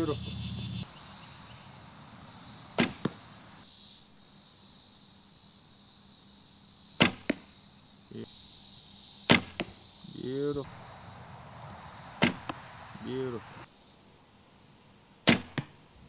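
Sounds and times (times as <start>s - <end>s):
arrow hitting foam target: 2.8s - 3.2s, 7.0s - 7.5s, 9.3s - 9.8s, 12.2s - 12.6s, 15.3s - 15.7s
bow string snapping: 11.6s - 12.6s.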